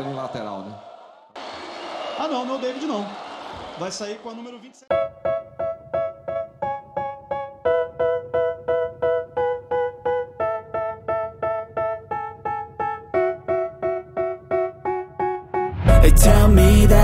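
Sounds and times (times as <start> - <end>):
keyboard chords: 4.9 - 17.0.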